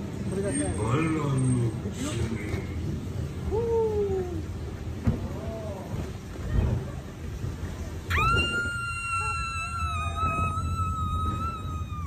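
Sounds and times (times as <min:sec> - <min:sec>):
low rumble of water ride: 0:00.0 - 0:12.0
woman screaming: 0:08.1 - 0:12.0.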